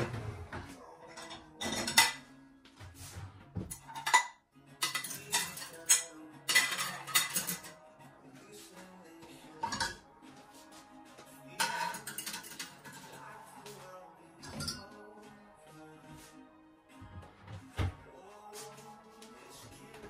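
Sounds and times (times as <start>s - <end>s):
ceramic plates clinking: 1.1s - 2.3s, 3.7s - 7.7s, 9.6s - 10.0s, 11.6s - 13.2s, 14.4s - 14.9s.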